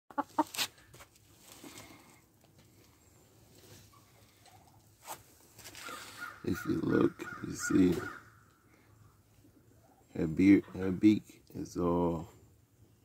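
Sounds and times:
hen clucking: 0.1 - 0.6.

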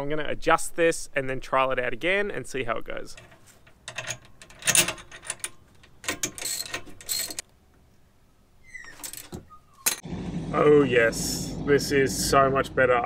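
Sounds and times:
metal clinks: 3.1 - 7.4
hand ratchet clicking: 3.2 - 7.4.

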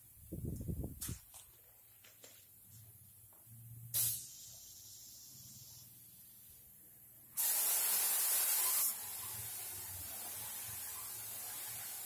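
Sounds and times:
compressed air hissing: 3.9 - 6.7, 7.3 - 12.0.

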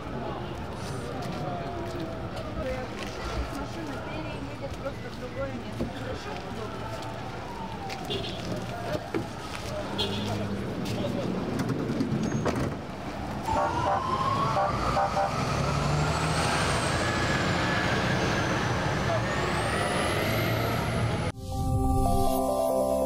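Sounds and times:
vehicle engines running: 0.0 - 21.4
emergency vehicle siren wailing: 6.4 - 9.9, 13.2 - 21.4.

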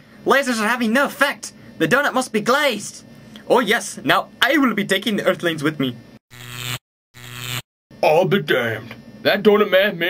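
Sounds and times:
electronic buzzing hums: 6.3 - 7.7.

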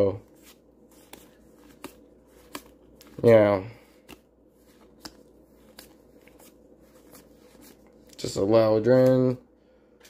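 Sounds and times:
faint steady hum: 0.0 - 10.0
cards flipped by hand: 0.2 - 8.2.

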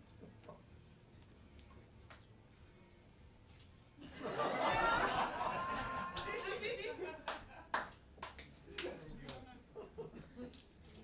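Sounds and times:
single handclaps: 6.1 - 6.6, 7.2 - 9.5.

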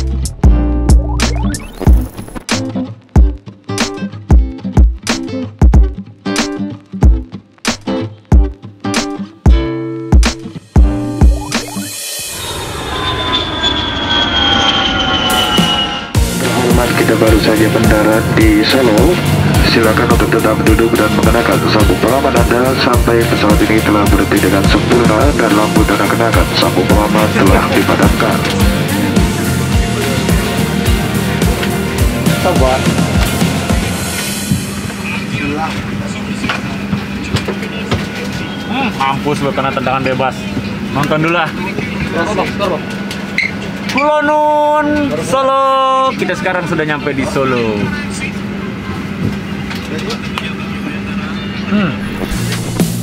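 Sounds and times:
high whining engine tones: 11.3 - 20.3
jet airliner passing: 11.6 - 40.9
faint passenger chatter: 34.3 - 52.8.

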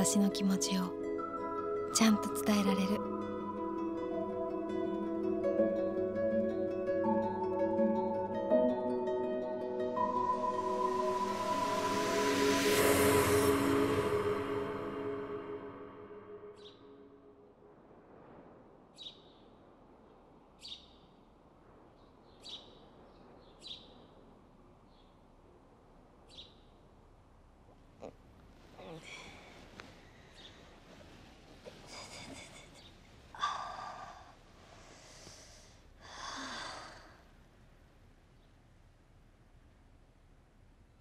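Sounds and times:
background music: 0.0 - 17.4
faint hiss: 0.0 - 41.0
small bird chirping: 20.6 - 21.2, 22.0 - 24.2
woman sighing: 28.8 - 29.6, 33.4 - 34.4, 36.0 - 37.2.

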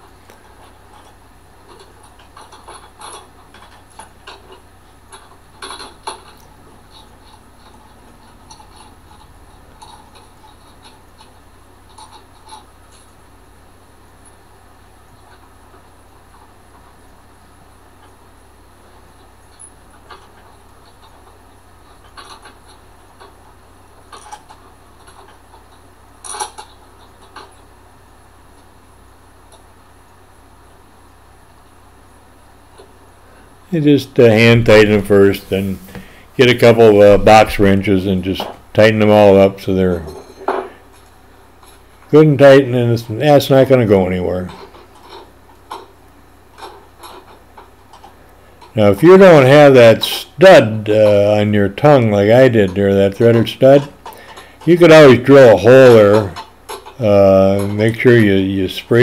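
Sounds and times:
faint low hum: 0.0 - 59.0.

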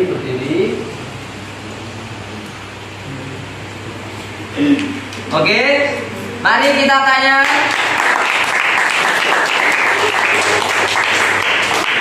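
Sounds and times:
room noise hiss: 0.0 - 12.0
steady low hum: 0.0 - 12.0.

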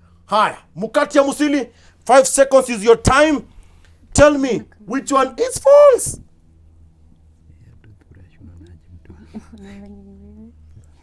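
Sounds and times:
steady held hum: 0.0 - 11.0
people whispering: 7.4 - 11.0.

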